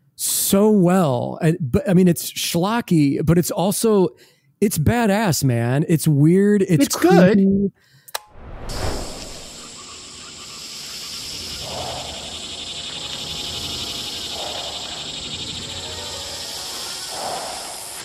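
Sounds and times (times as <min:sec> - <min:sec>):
low swells: 0:08.2 - 0:09.8
steady high hiss: 0:08.7 - 0:18.0
quiet horror film music: 0:09.7 - 0:18.0.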